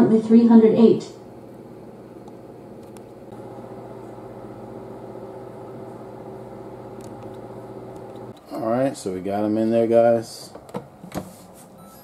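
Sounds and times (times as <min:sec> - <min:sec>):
countertop oven humming: 0:00.0 - 0:10.1.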